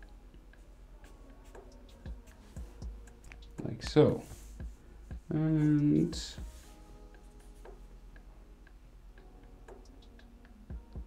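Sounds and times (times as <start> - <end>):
faint regular ticking: 0.0 - 11.0.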